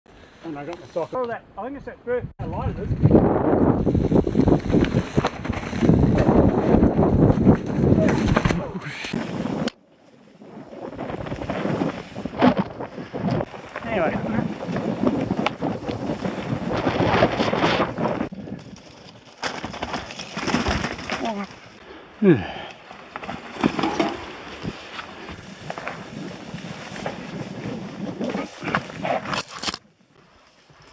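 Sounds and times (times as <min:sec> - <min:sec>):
wind buffeting microphone: 0:02.2 - 0:09.7, 0:10.4 - 0:18.8
bike tyres rumbling and rattling: 0:02.5 - 0:29.7.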